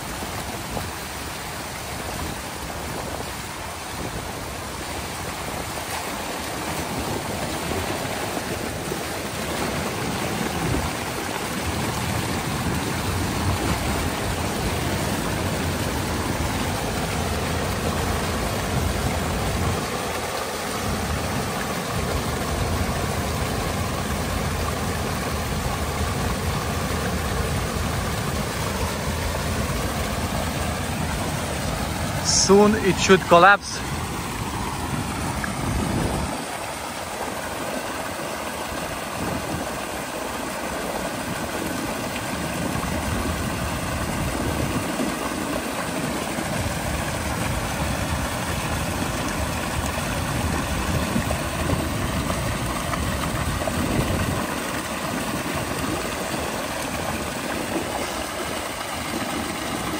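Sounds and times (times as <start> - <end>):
water rushing and churning: 0.0 - 59.9.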